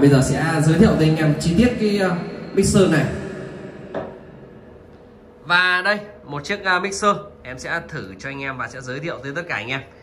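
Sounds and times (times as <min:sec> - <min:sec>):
man's voice echoing through speakers: 0:00.0 - 0:03.9.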